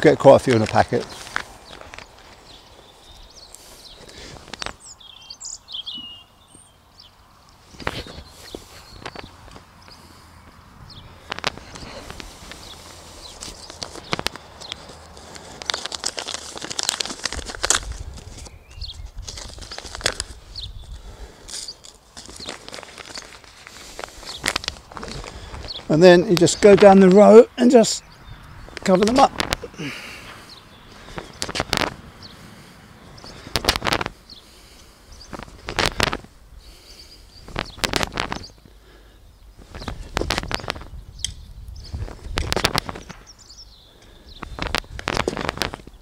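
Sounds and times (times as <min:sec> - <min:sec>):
footsteps on soil and grass: 0:00.3 - 0:04.8, 0:07.6 - 0:27.3, 0:28.6 - 0:38.6, 0:39.6 - 0:41.0, 0:44.4 - 0:46.0
bird chirping: 0:00.9 - 0:15.1, 0:18.4 - 0:35.7, 0:36.6 - 0:44.7
seed packet rustling: 0:11.3 - 0:27.3, 0:44.1 - 0:45.9.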